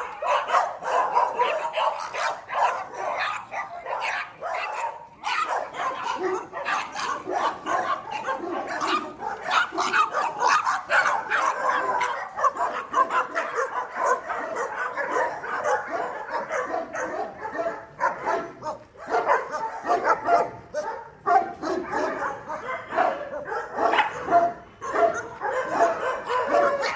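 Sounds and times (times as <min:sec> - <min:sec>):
many dogs barking and yipping: 0:00.0 - 0:26.9.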